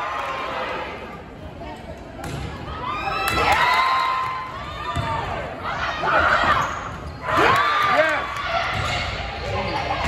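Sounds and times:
people shouting in a gymnasium: 2.3s - 10.0s.

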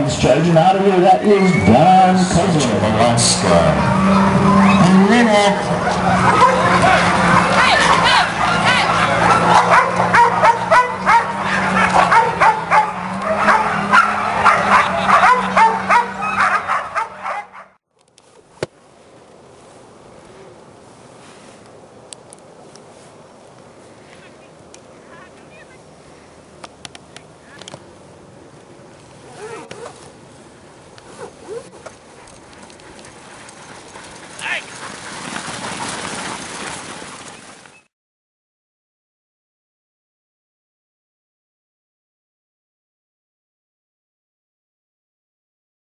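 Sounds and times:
dogs barking and yipping: 3.0s - 17.8s, 29.2s - 30.2s, 30.9s - 37.9s
sled runners hissing on snow: 19.5s - 21.6s.

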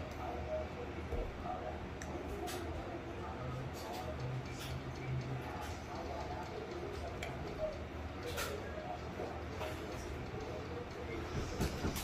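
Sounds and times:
faint muffled voices: 0.0s - 12.0s.

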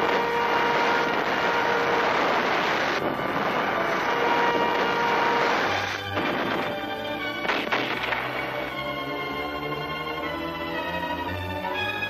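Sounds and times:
flamethrower roaring: 0.0s - 6.8s.

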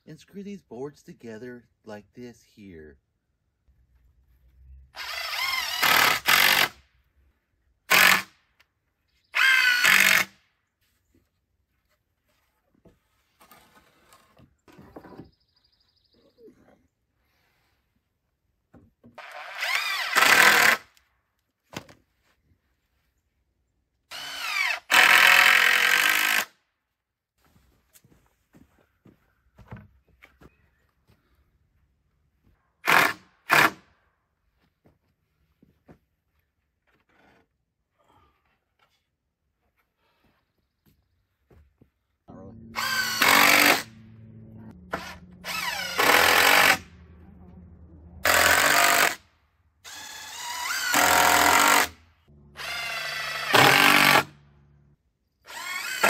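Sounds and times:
drill driving screws into wood: 5.0s - 6.9s, 7.9s - 8.4s, 9.4s - 10.4s, 19.2s - 21.0s, 24.1s - 26.6s, 32.8s - 33.9s, 42.8s - 43.9s, 44.9s - 46.9s, 48.2s - 49.2s, 49.8s - 52.0s, 52.6s - 54.4s, 55.4s - 56.0s.

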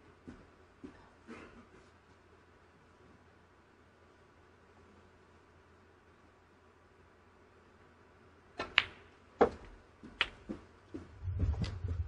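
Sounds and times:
snooker balls clicking: 8.6s - 10.6s
low rumble: 11.0s - 12.0s.

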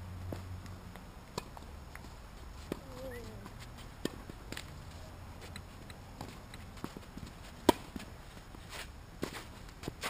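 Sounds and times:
tennis ball bouncing: 0.3s - 2.1s, 2.7s - 4.7s, 5.4s - 8.5s
racket hitting tennis ball: 1.3s - 4.7s, 5.4s - 10.0s
distant racket hit: 5.5s - 8.1s.

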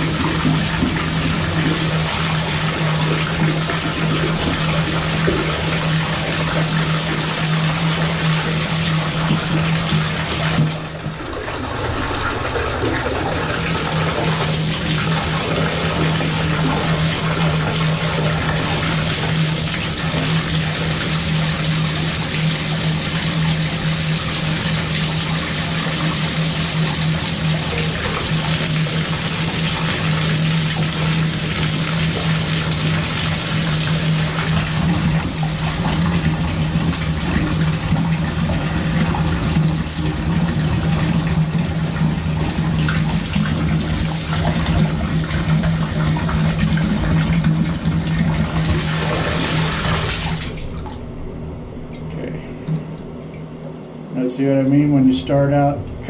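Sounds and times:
water jetting into bathtub: 0.0s - 52.0s
constant low hum: 0.0s - 56.0s.

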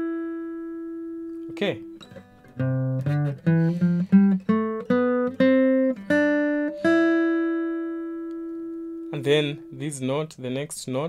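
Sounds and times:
acoustic guitar plucking a scale: 0.0s - 10.6s.

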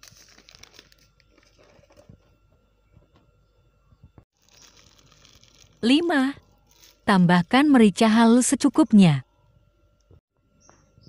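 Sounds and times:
plastic packet crinkling: 0.0s - 2.0s, 4.4s - 7.1s.

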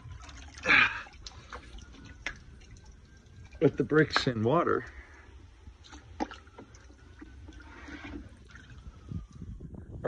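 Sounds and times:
water trickling and sloshing: 0.0s - 9.8s.

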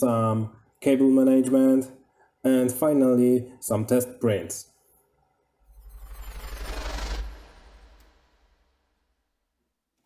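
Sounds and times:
whoosh transition effect: 5.6s - 9.2s
fast low flutter: 5.7s - 9.0s.

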